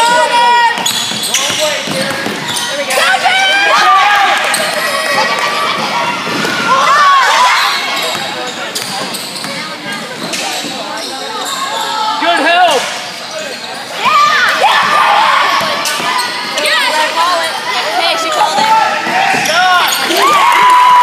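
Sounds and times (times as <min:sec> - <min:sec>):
sneaker squeaks: 0:00.7 - 0:03.2, 0:07.3 - 0:14.4, 0:15.4 - 0:20.2
spectators shouting: 0:02.9 - 0:08.0, 0:14.0 - 0:17.2, 0:17.9 - 0:21.0.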